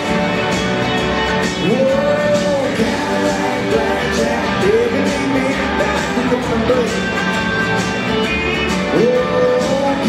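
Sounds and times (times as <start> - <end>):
country band playing: 0.0 - 10.0
person singing: 1.4 - 7.8, 8.7 - 10.0.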